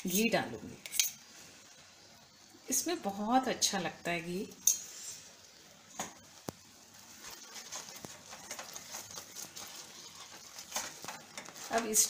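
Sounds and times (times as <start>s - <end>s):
mixture bubbling and crackling in pan: 0.0s - 12.0s
spoon stirring: 7.1s - 12.0s.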